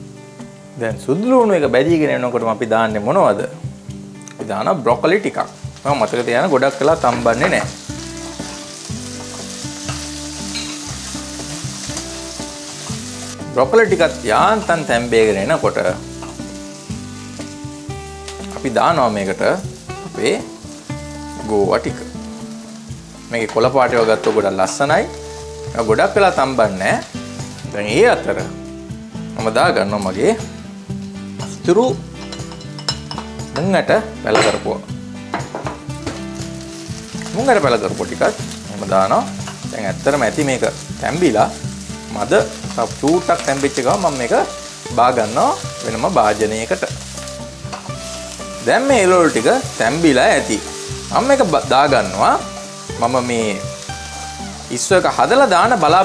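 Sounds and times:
background music: 0.0 - 56.0
vegetables sizzling in oil: 0.0 - 56.0.

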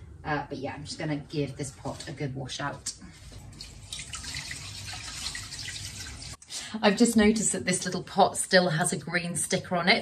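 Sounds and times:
tap water splashing into pot: 3.4 - 6.4.

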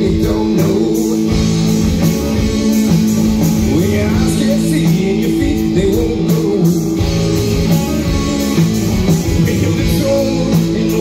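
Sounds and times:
drum kit: 0.0 - 11.0
electric guitars: 0.0 - 11.0.

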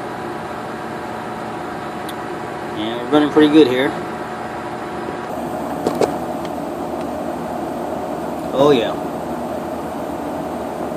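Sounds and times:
refrigeration compressor humming: 0.0 - 10.9.

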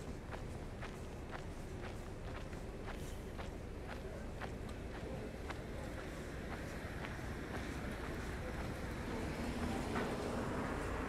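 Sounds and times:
footsteps on pavement: 0.0 - 11.0.

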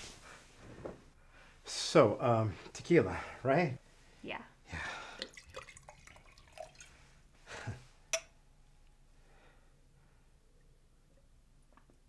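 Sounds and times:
liquid pouring into glass: 5.2 - 7.0.

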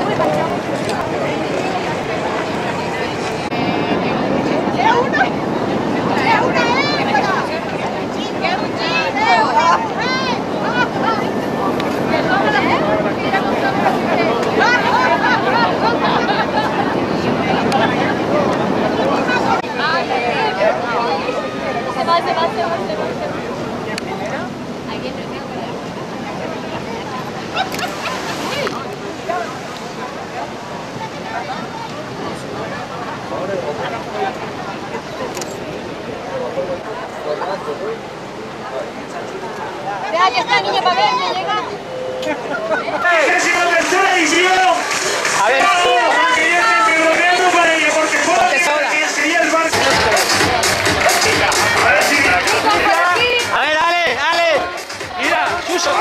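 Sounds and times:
boat engine: 0.0 - 48.4
people talking: 0.0 - 56.0
voices calling out: 0.0 - 56.0
water noise: 0.0 - 56.0
wind: 0.0 - 56.0.

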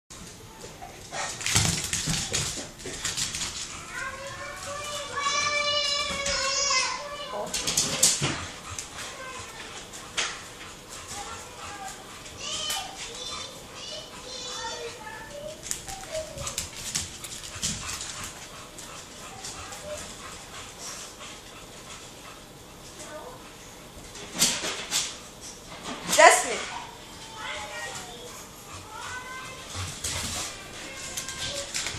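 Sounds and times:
dog claws clicking on wooden floor: 1.1 - 8.9, 15.5 - 20.0, 29.0 - 31.9.

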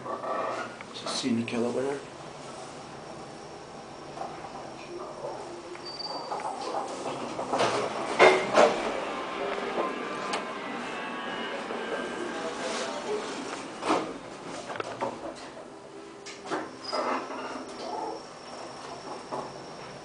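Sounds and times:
steady background noise: 0.0 - 20.0.

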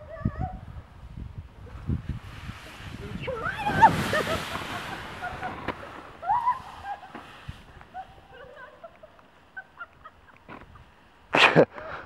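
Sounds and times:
wind on microphone: 0.0 - 8.6
inner tube sliding on snow: 0.0 - 12.0.

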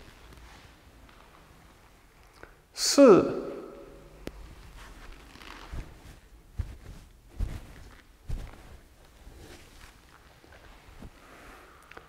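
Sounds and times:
soft low thumps: 4.2 - 9.0.

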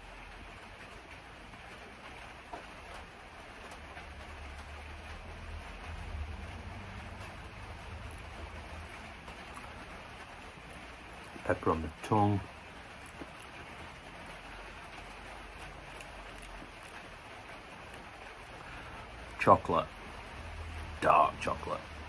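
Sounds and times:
steady rain hiss: 0.0 - 22.0.

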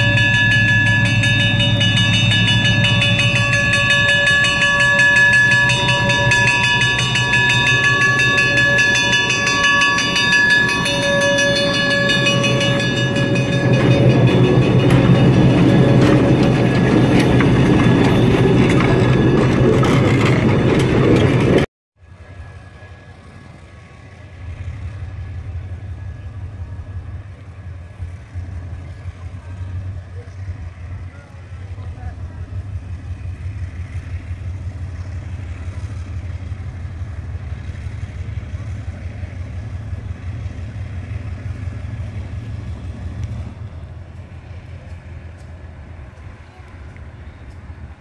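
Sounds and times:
distant diesel locomotive rumbling: 0.0 - 48.0
loud locomotive passing: 0.0 - 48.0.

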